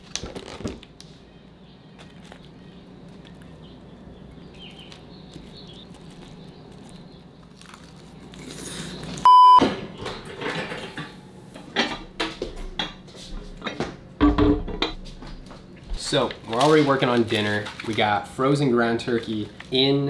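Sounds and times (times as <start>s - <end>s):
faint room hum: 0.0s - 20.0s
close-up chewing: 2.0s - 9.3s
sharp electronic beep: 9.3s - 9.6s.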